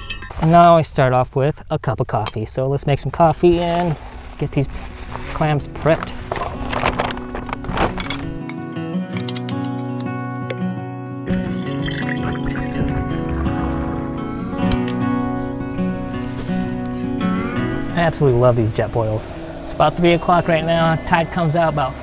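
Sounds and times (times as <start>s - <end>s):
music of held layered notes: 6.2s - 22.0s.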